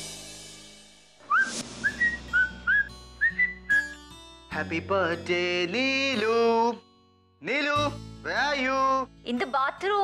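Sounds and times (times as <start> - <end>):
person whistling a tune: 1.2 - 4.0.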